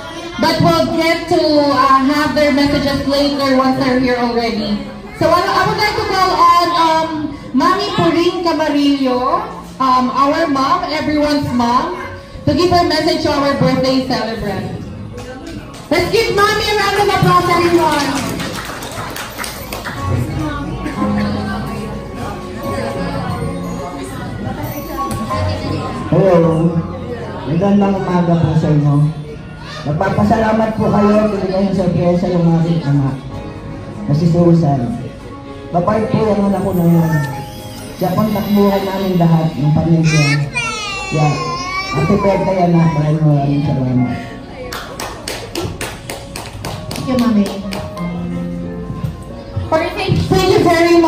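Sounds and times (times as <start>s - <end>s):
faint music: 0.0s - 51.0s
hand clapping: 17.0s - 20.1s, 44.7s - 48.1s.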